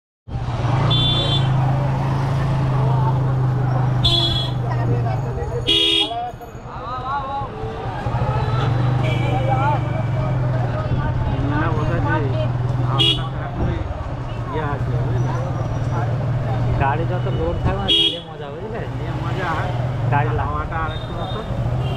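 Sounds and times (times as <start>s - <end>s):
people's voices: 0.7s - 21.8s
horn beeps: 4.0s - 4.7s.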